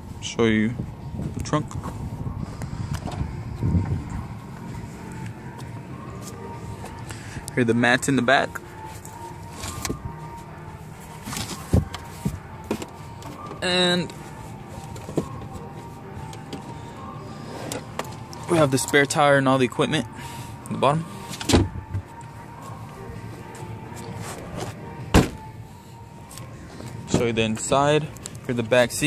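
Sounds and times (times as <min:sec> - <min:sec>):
low handling rumble: 0:00.7 - 0:07.7
car trunk latch thump: 0:21.4 - 0:21.8, 0:25.1 - 0:25.4
car trunk floor panel lifted: 0:24.2 - 0:25.4.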